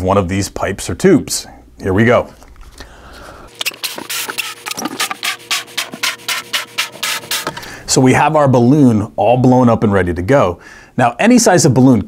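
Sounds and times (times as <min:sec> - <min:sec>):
balloon rubber scratching: 0:03.5 - 0:07.6.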